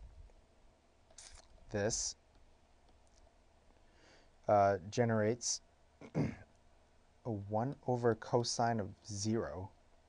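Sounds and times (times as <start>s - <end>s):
person speaking: 1.2s - 2.3s, 4.4s - 6.4s, 7.3s - 9.8s.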